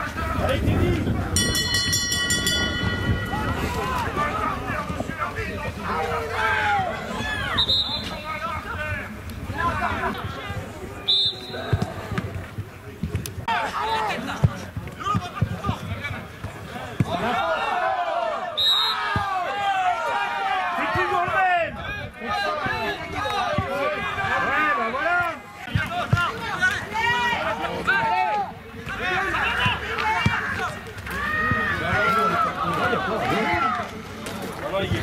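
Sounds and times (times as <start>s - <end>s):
crowd shouting and calling: 0.0s - 35.0s
referee's whistle blast: 7.5s - 8.2s, 11.0s - 11.8s, 18.6s - 19.2s.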